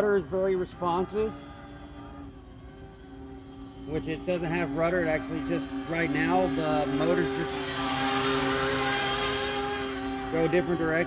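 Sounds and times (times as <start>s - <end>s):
electric motors and propellers droning: 0.0s - 11.0s.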